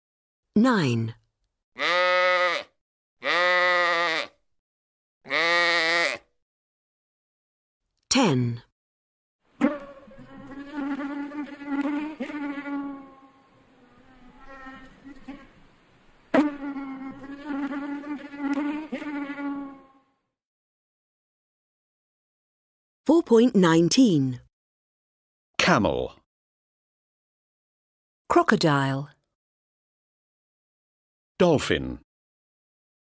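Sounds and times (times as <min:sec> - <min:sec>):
sheep bleating: 0:01.8 - 0:04.4, 0:05.3 - 0:06.3, 0:09.6 - 0:15.5
insect buzzing: 0:09.5 - 0:20.2.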